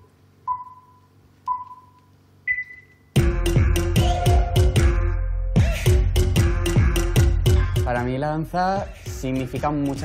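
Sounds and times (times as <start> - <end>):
countdown beeps: 0.5 - 3.1
loud music with heavy beat: 3.2 - 10.0.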